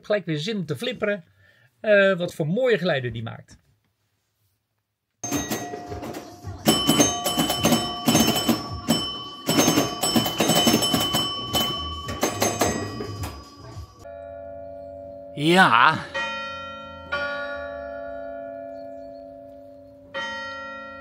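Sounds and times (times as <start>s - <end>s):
pinball mechanical clicks: 5.2s - 13.8s
ringing bell and chime tones: 5.2s - 21.0s.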